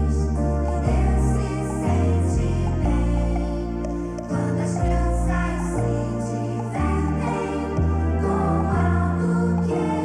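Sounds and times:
bass line: 0:00.0 - 0:10.0
male vocal quartet singing: 0:00.0 - 0:10.0.

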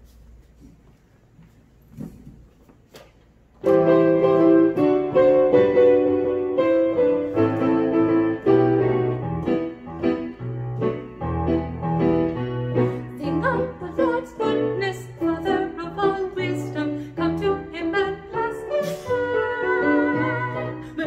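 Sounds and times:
piano playing a hymn: 0:03.6 - 0:21.0.

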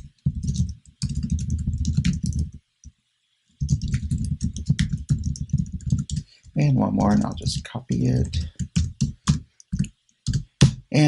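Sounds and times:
fast typing on computer keyboard: 0:00.0 - 0:02.6, 0:03.6 - 0:06.3, 0:07.0 - 0:10.8.

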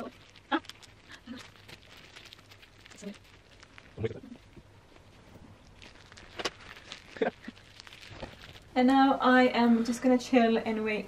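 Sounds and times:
plastic crinkling: 0:00.0 - 0:09.1.

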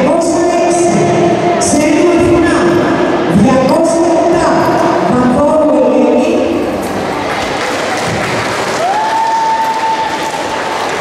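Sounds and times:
audience applauding: 0:07.2 - 0:11.0.

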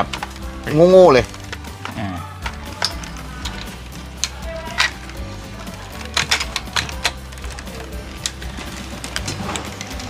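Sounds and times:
background music: 0:00.0 - 0:10.0
plastic toy parts clicking: 0:01.2 - 0:10.0.

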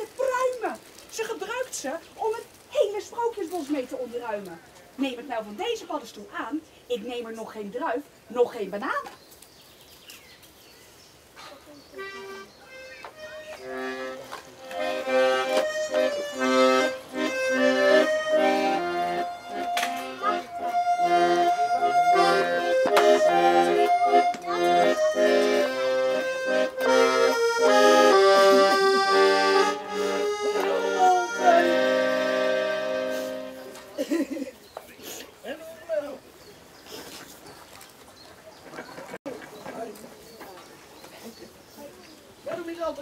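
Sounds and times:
accordion playing a tune: 0:11.9 - 0:34.0.

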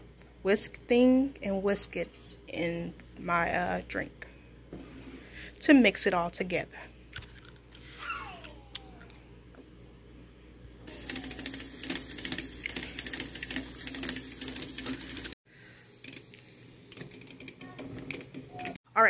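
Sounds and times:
handheld milk frother whirring: 0:10.9 - 0:15.4.

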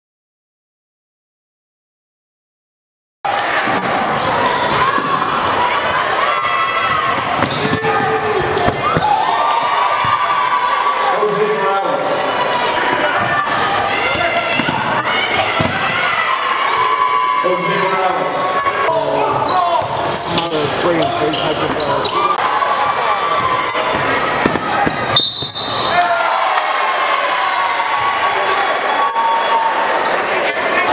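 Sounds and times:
crowd and players' voices: 0:03.3 - 0:30.9.

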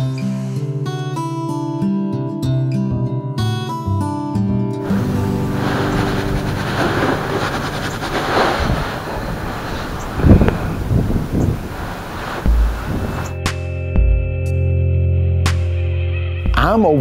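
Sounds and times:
background music: 0:02.6 - 0:09.0, 0:12.7 - 0:17.0
wind buffeting microphone: 0:04.8 - 0:13.4.

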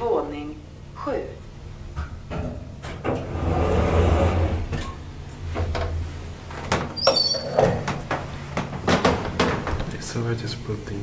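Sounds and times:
elevator sliding doors: 0:02.8 - 0:09.8
high squeak: 0:07.0 - 0:07.8.

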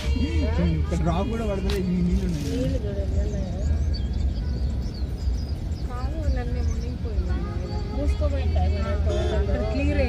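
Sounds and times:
car driving rumble: 0:00.0 - 0:10.0.

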